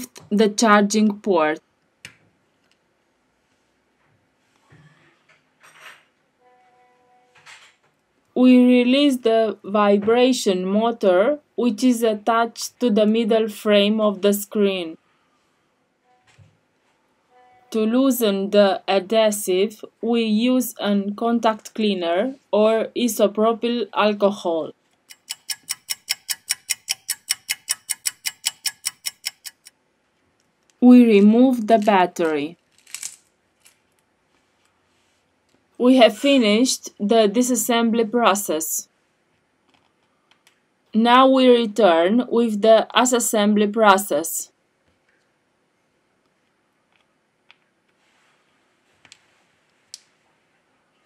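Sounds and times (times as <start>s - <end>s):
clock ticking: 25.1s - 29.7s.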